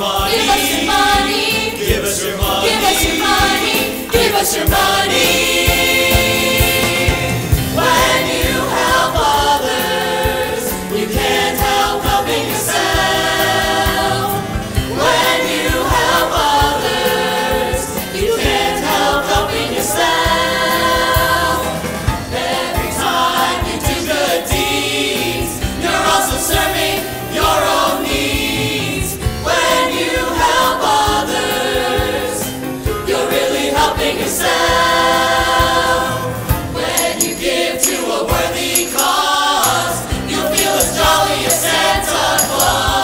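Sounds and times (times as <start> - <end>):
backing band: 0.0 - 43.0
ensemble singing in chorus: 0.0 - 43.0.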